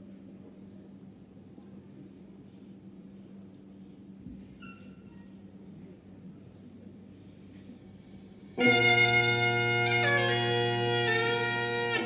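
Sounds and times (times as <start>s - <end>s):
bagpipe chanter melody: 8.6s - 12.0s
bagpipe drone: 8.6s - 12.0s.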